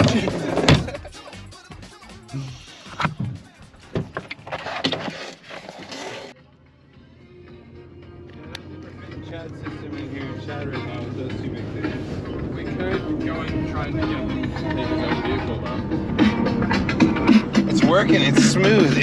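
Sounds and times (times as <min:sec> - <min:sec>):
music from car radio: 0:00.0 - 0:19.0.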